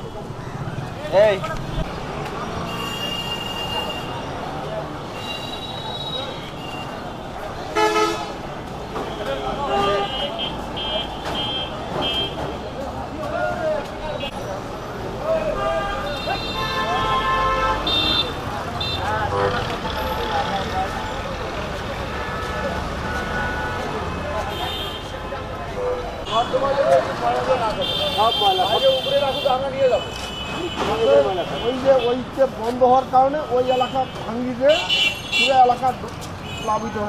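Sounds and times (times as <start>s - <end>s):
traffic noise: 0.0s - 37.0s
vehicle horns honking: 2.6s - 4.3s, 7.7s - 8.4s, 9.0s - 12.6s, 15.5s - 20.4s, 22.0s - 25.2s, 27.6s - 32.2s, 33.5s - 37.0s.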